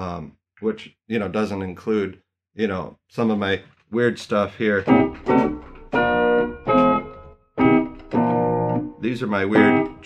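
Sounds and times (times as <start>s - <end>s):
keyboard playing non-tonal chords: 4.8s - 10.0s.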